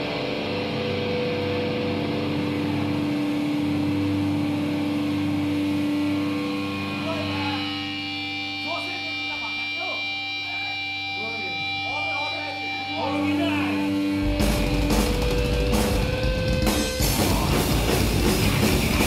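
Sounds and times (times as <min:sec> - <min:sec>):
guitar amplifier feedback: 0:00.0 - 0:19.0
electrical buzz: 0:11.1 - 0:19.0.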